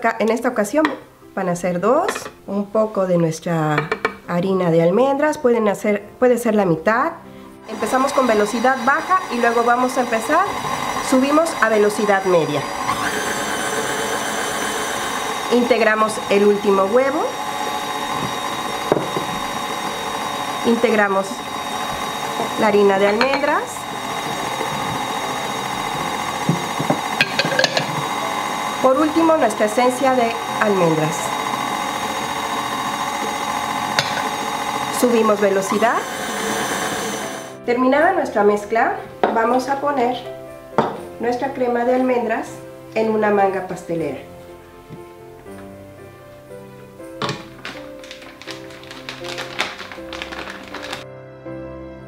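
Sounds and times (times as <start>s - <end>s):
background music: 0.0s - 52.0s
stand mixer motor running: 7.7s - 37.6s, 47.6s - 51.0s.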